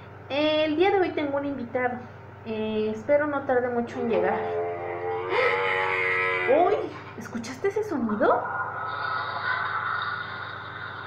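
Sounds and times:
camel moaning call: 4.1 - 7.1.

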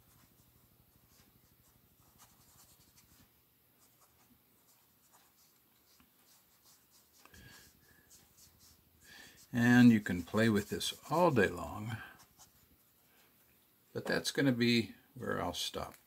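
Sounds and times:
marker scratching on paper: 2.0 - 3.2, 3.8 - 12.7.

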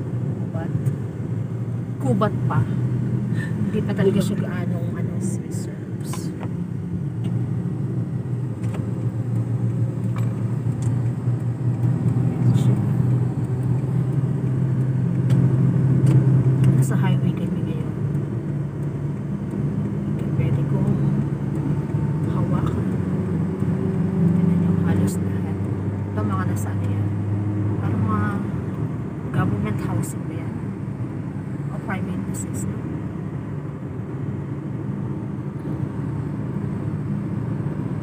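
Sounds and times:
car engine and tyres droning: 0.0 - 38.0.

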